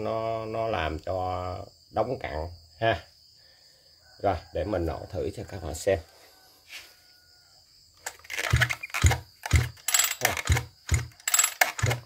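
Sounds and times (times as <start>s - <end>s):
recoil starter yanked: 8.0s - 12.0s
engine turning over in thumps: 8.4s - 12.0s.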